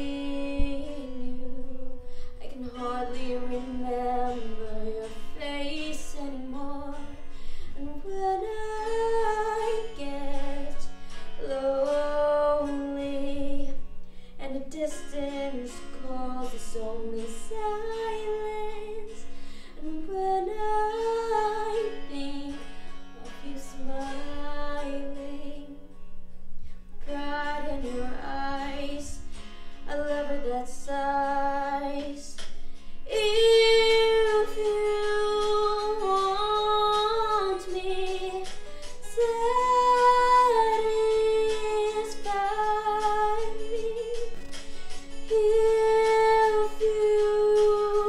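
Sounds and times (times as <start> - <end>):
woman singing a ballad: 0.0 - 26.0, 26.9 - 48.0
soft instrumental accompaniment: 0.0 - 48.0.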